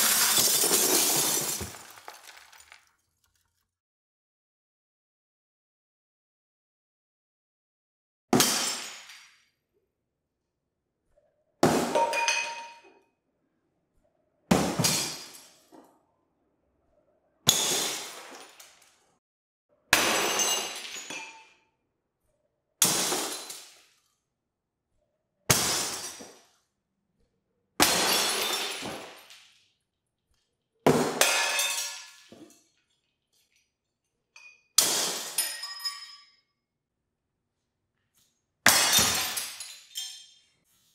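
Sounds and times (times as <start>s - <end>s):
tinkling glass shards: 0.0s - 2.7s
glass beakers smashing: 0.0s - 2.9s, 31.2s - 32.6s, 38.7s - 40.5s.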